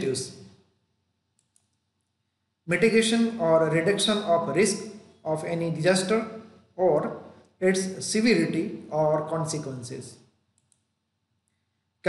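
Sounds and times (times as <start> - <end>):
person speaking: 0.0 - 0.6, 2.6 - 11.1
faint small clicks: 1.3 - 1.9, 10.5 - 11.6.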